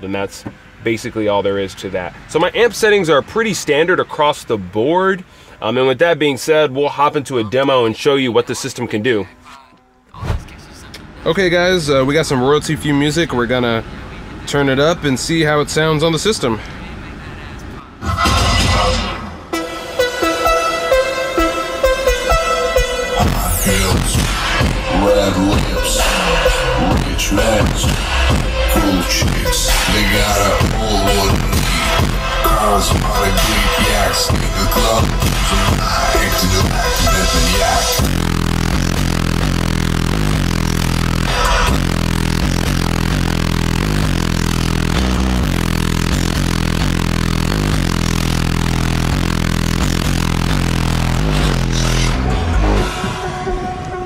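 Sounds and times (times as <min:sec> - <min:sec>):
deep sliding bass notes: 0:18.0 - 0:54.0
trap beat through car speakers: 0:18.0 - 0:54.0.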